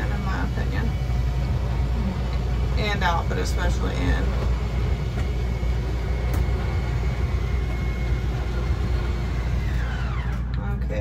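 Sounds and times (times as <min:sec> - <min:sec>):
electric motor whining: 0:00.0 - 0:10.8.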